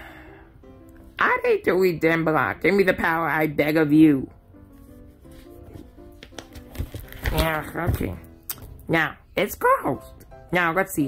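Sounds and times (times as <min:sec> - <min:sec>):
quiet background music: 0:00.0 - 0:11.0
notebook page handling clicks: 0:06.2 - 0:07.6.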